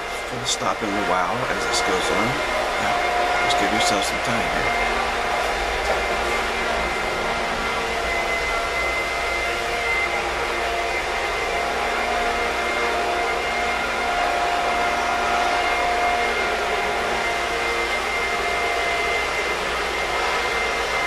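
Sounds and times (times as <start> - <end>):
fan blowing with faint tones: 0.0 - 21.0.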